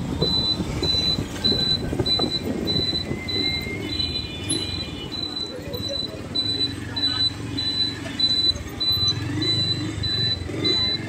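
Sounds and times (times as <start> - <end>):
street traffic: 0.0 - 11.0
vehicle rumbling on road: 0.0 - 11.0
high electronic beep: 0.2 - 11.0.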